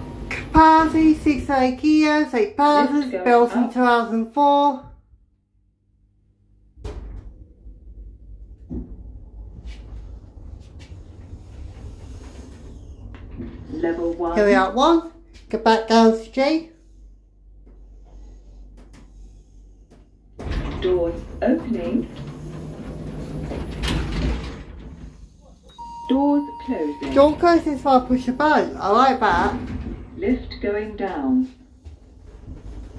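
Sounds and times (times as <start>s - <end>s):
lift travelling rumble: 0.0s - 5.0s, 6.8s - 32.9s
low motor hum: 4.9s - 15.4s
steady beep: 25.7s - 27.5s.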